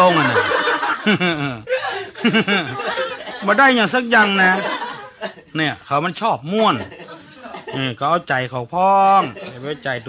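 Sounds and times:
person laughing: 0:00.0 - 0:03.6.

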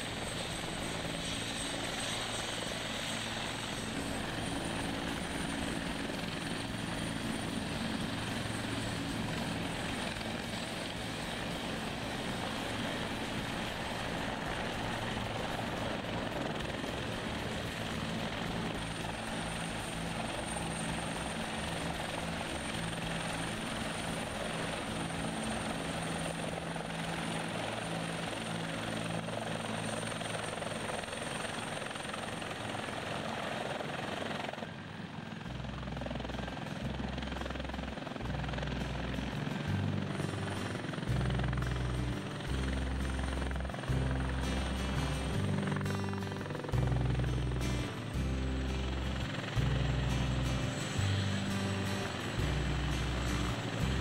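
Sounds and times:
helicopter hovering: 0:00.0 - 0:54.0.

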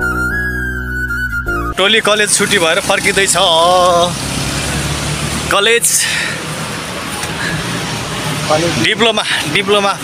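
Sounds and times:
road traffic hum: 0:01.7 - 0:10.0.

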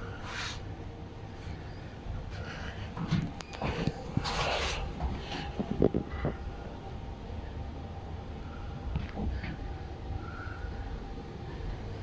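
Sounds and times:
faint low hum: 0:00.0 - 0:12.0
rustling hisses: 0:00.2 - 0:00.7.

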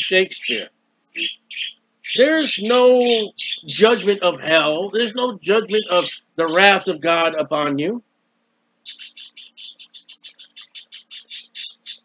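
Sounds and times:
bird chirping: 0:00.0 - 0:07.2, 0:08.8 - 0:12.0.

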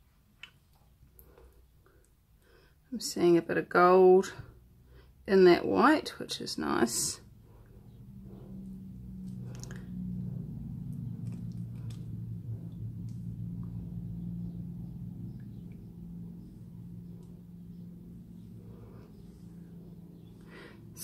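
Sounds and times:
low steady hum: 0:00.0 - 0:21.0.

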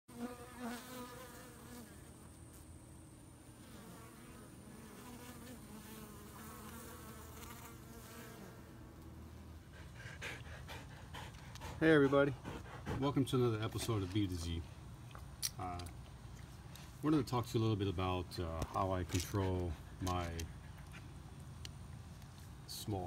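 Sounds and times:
single bee flying past: 0:00.1 - 0:02.7, 0:03.4 - 0:09.1
bees buzzing: 0:00.1 - 0:09.3.

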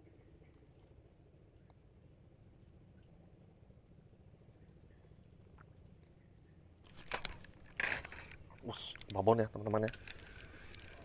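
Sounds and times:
fishing rod handling noises: 0:06.8 - 0:11.0.

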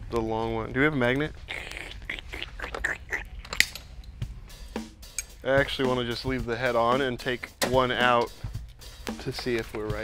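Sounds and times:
pliers clicking on metal: 0:03.4 - 0:04.2, 0:05.1 - 0:05.4.

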